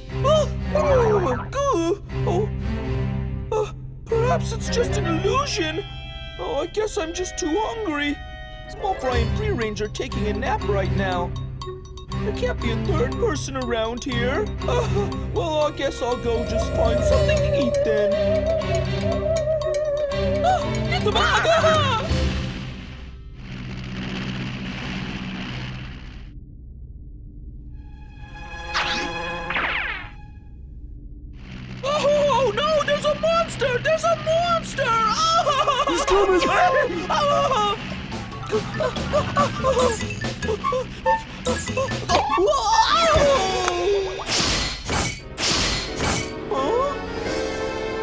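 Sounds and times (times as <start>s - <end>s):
cartoon background music: 0.0s - 22.9s, 28.3s - 30.4s, 31.9s - 48.0s
cartoon whooshes: 28.7s - 30.2s.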